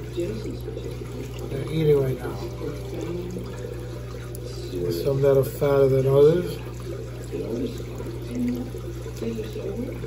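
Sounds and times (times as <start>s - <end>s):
low filter hum: 0.0s - 10.0s
water trickling: 0.0s - 10.0s.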